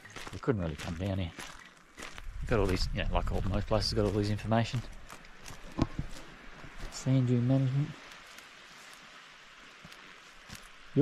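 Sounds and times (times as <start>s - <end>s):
faint coastal hiss: 0.0s - 11.0s.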